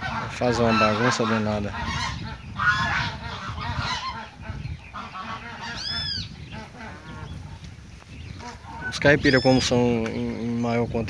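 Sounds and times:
geese honking: 0.0s - 9.8s.

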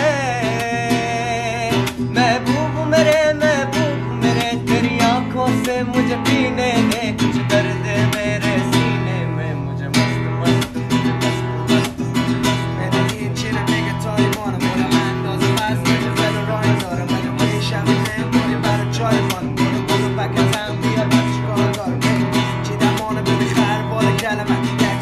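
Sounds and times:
guitar strumming: 0.0s - 25.0s
man singing: 0.0s - 25.0s.

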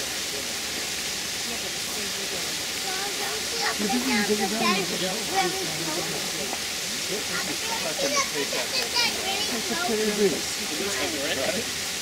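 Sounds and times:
people talking in background: 0.0s - 12.0s
steady hiss: 0.0s - 12.0s.

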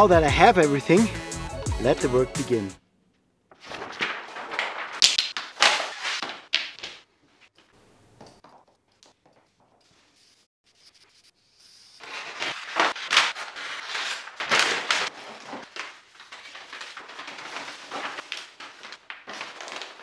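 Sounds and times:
paper rustling and crinkling: 3.5s - 7.0s, 12.0s - 20.0s.

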